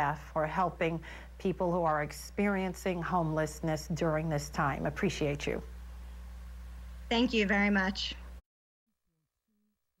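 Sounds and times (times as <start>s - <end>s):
woman speaking: 0.0s - 5.7s, 7.1s - 8.3s.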